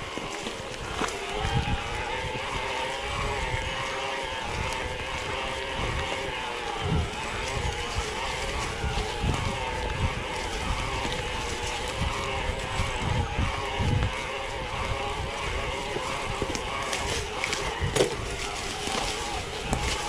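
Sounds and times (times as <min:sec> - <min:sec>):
bike drivetrain whine: 0:00.0 - 0:20.0
wind buffeting microphone: 0:00.0 - 0:20.0
tyre rumble on dirt: 0:06.9 - 0:20.0.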